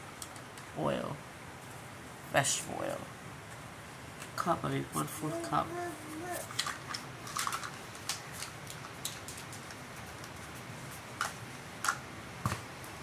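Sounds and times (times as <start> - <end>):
person speaking: 2.3 - 3.2, 4.3 - 6.6.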